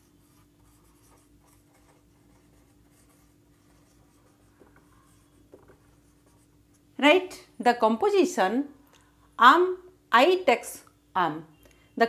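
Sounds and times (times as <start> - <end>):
marker writing on whiteboard: 0.0 - 6.8
steady low hum: 0.0 - 7.6.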